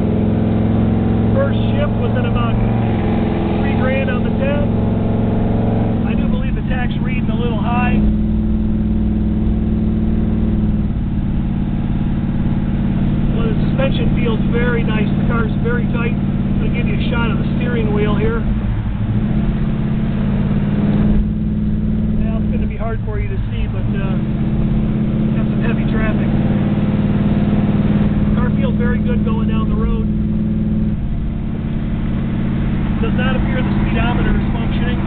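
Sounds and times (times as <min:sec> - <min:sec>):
car engine from inside cabin: 0:00.0 - 0:35.0.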